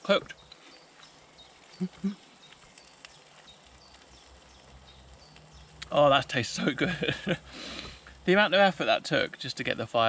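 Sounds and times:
person humming mm: 0:01.8 - 0:02.2.

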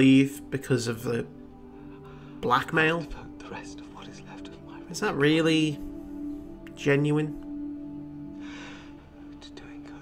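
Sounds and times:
soft background music: 0:00.0 - 0:10.0
person whispering: 0:02.4 - 0:05.8, 0:09.4 - 0:10.0.

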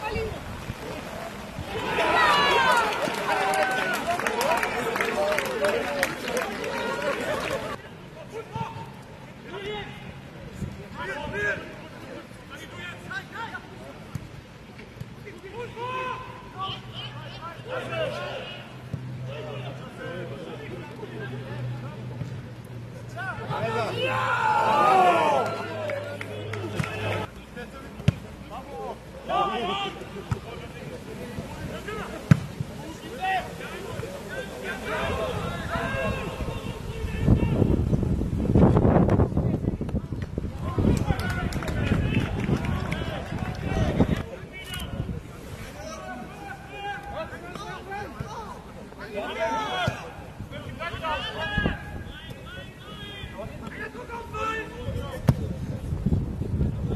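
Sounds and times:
men shouting outdoors: 0:01.6 - 0:10.2, 0:15.5 - 0:21.7, 0:23.1 - 0:27.3, 0:28.6 - 0:30.6, 0:32.8 - 0:37.8, 0:45.8 - 0:55.2
football being kicked: 0:32.3 - 0:32.6.

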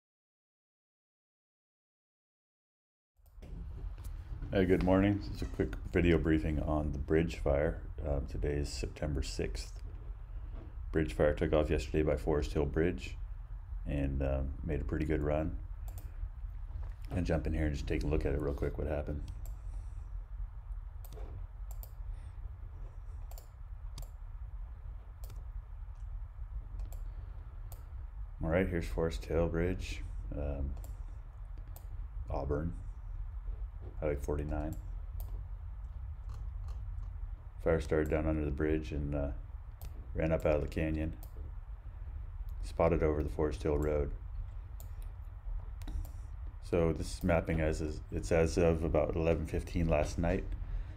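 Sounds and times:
steady low hum: 0:03.2 - 0:50.9
computer mouse clicking: 0:15.8 - 0:16.1, 0:21.0 - 0:22.0, 0:22.8 - 0:24.2, 0:25.1 - 0:26.1, 0:26.7 - 0:28.0, 0:30.8 - 0:32.0, 0:34.5 - 0:37.2, 0:39.7 - 0:41.4, 0:44.7 - 0:45.2, 0:45.8 - 0:46.5.

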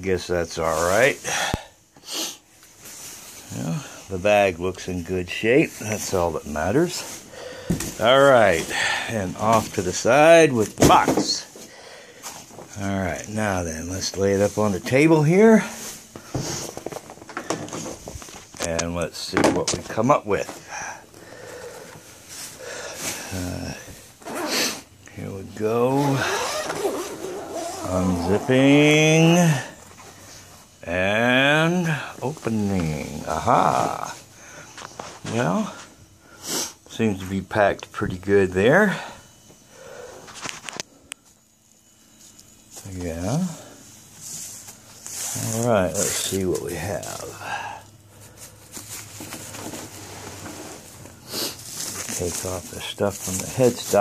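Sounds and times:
low steady hum: 0:00.0 - 0:54.0
soft handling noise: 0:04.2 - 0:24.4, 0:48.1 - 0:54.0.

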